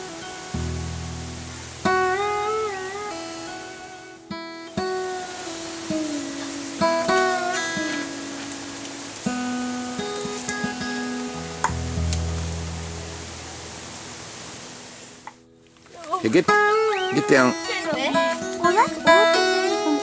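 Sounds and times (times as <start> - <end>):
acoustic guitar plucked notes: 0.0 - 20.0.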